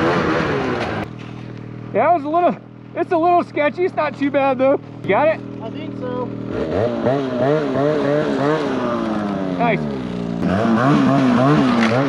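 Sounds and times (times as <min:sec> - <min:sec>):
snowmobile engine revving: 0:00.0 - 0:12.0.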